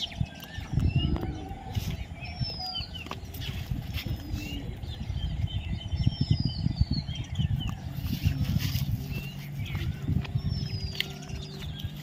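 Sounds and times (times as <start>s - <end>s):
birds chirping: 0.0s - 12.0s
low uneven rumble: 0.0s - 12.0s.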